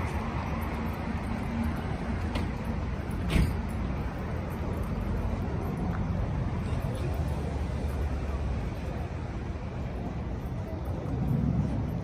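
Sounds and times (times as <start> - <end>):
cars passing: 0.0 - 12.0
city street traffic: 0.0 - 12.0.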